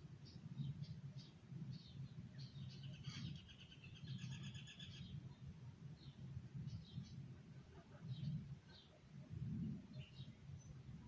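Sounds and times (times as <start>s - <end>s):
bird chirps: 0.2s - 5.4s
rapid trilling bird song: 0.2s - 5.4s, 9.7s - 10.8s.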